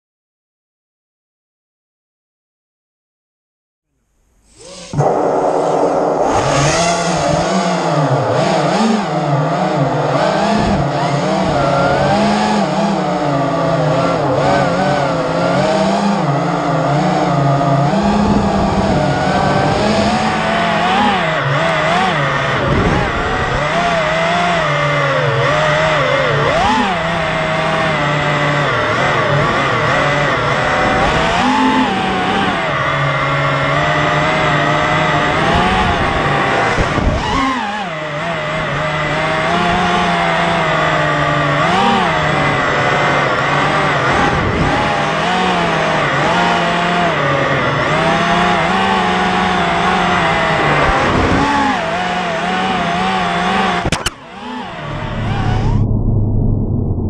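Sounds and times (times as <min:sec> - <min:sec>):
drone motors buzzing whine: 0:04.3 - 0:57.0.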